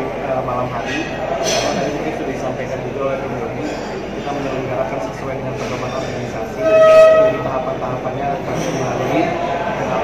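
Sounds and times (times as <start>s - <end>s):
loud steady pitched tone: 6.6s - 7.9s.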